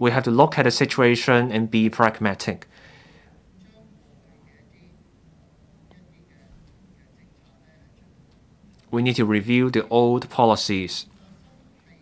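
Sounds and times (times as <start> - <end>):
faint speech: 3.4 - 8.7, 10.7 - 12.0.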